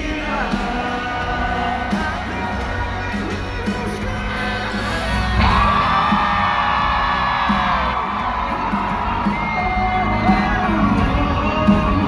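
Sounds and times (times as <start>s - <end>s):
pop-country band through speakers: 0.0s - 12.0s
crowd cheering: 0.3s - 12.0s.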